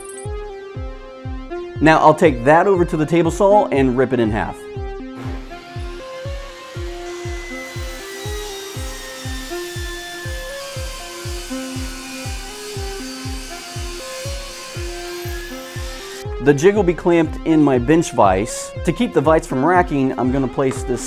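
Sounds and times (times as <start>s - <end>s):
background music with beat: 0.0s - 21.0s
table saw ripping wood: 5.2s - 16.2s.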